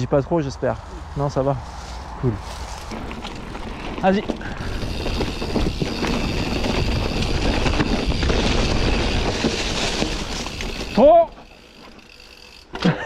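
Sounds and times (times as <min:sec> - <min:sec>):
bike rattling: 0:01.2 - 0:13.0
bike tyres rumbling over stones: 0:01.8 - 0:12.8.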